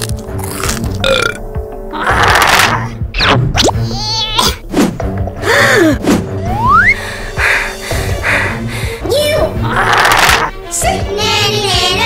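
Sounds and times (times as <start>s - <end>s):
background music: 0.0s - 12.0s
cartoon burp: 1.0s - 1.4s.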